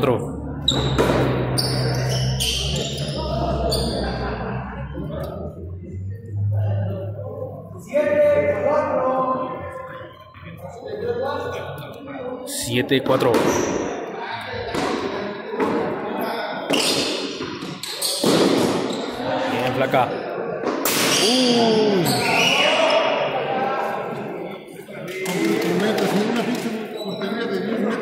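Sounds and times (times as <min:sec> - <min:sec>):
players calling out: 0:21.1 - 0:23.9.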